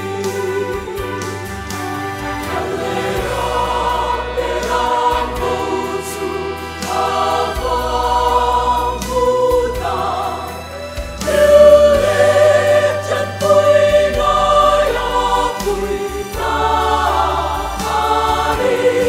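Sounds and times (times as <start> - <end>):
mixed choir singing gospel: 0.0 - 19.0.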